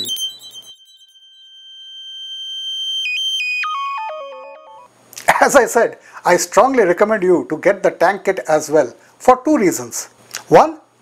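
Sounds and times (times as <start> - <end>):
high synthesized tone: 0.0 - 4.9.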